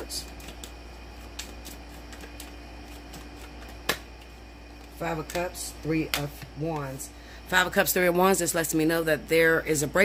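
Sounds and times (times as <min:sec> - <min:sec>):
card snapping: 0:00.3 - 0:04.3
cards ticking together: 0:00.3 - 0:04.3.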